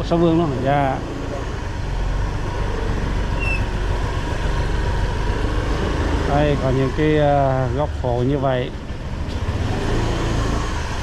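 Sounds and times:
motor scooter engine running: 0:00.0 - 0:11.0
road noise: 0:00.0 - 0:11.0.

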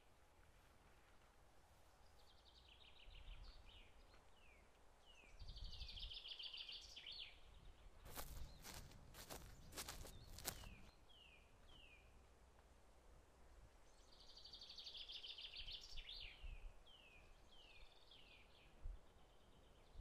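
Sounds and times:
songbird trills and chirps: 0:01.9 - 0:12.2, 0:13.8 - 0:20.0
footsteps on dry ground: 0:08.0 - 0:10.9.

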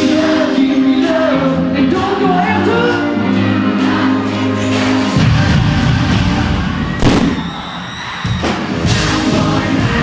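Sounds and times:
live pop song over loudspeakers: 0:00.0 - 0:10.0
sharp bang: 0:07.0 - 0:07.6.

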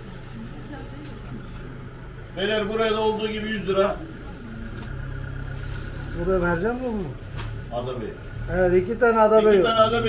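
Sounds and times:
faint voices: 0:00.0 - 0:10.0
low mechanical hum: 0:00.0 - 0:10.0.

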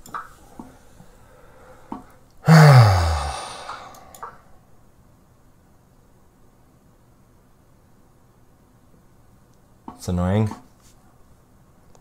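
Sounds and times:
man sighing: 0:01.4 - 0:04.4.

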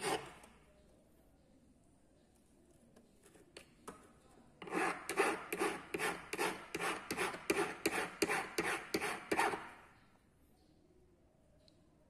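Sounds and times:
hand file rasping on metal: 0:00.0 - 0:00.4, 0:04.6 - 0:09.7.

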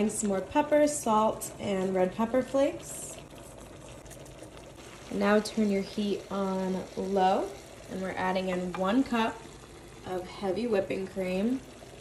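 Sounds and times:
sauce bubbling in a pan: 0:00.0 - 0:12.0.

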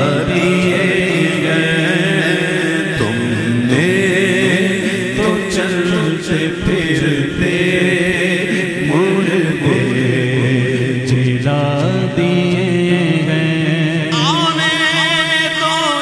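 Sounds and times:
drone of voices: 0:00.0 - 0:16.0
vocal chanting with held notes: 0:00.0 - 0:16.0.

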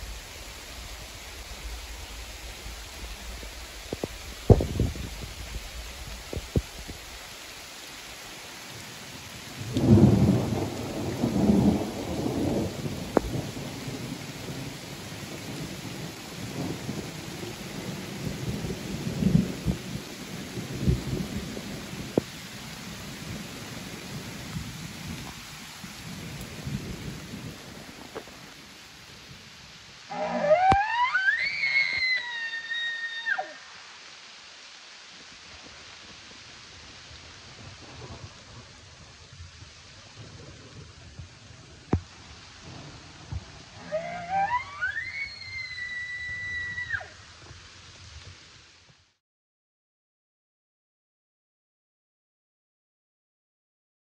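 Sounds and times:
steady hiss: 0:00.0 - 0:30.7, 0:31.3 - 0:49.2
elk bugling: 0:30.1 - 0:33.7, 0:43.8 - 0:47.2.

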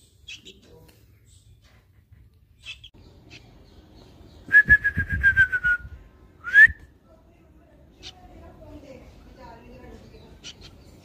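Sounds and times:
person whistling: 0:04.5 - 0:06.8.

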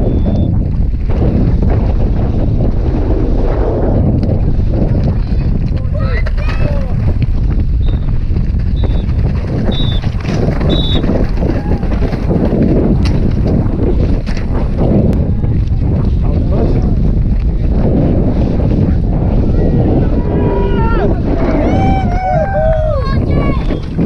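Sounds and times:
low rumble of tyres: 0:00.0 - 0:24.0
wind buffeting microphone: 0:00.0 - 0:24.0
bike clicks and rattles: 0:04.0 - 0:19.0.

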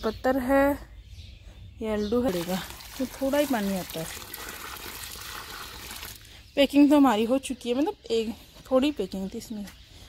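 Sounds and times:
water pouring from bucket onto soil: 0:02.3 - 0:06.4.

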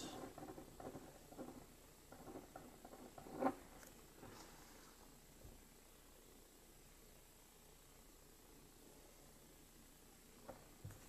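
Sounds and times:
pen scratching on paper: 0:00.0 - 0:03.9.

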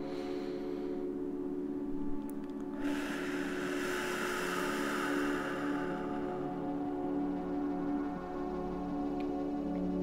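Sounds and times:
ambient drone music: 0:00.0 - 0:10.0
soft airy hiss: 0:02.7 - 0:09.6.

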